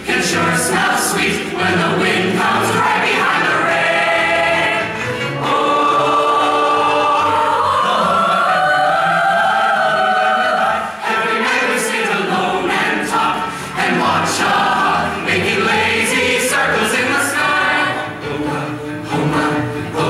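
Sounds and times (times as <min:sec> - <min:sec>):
chorus singing: 0:00.0 - 0:20.0.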